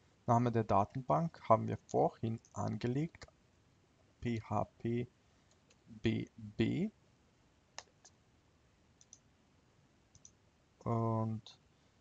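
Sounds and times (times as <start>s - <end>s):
faint computer mouse clicks: 9.0s - 9.2s, 10.1s - 10.4s.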